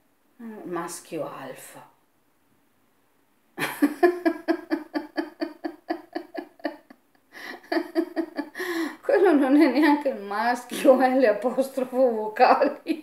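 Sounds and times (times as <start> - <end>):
person laughing: 3.6 - 9.0.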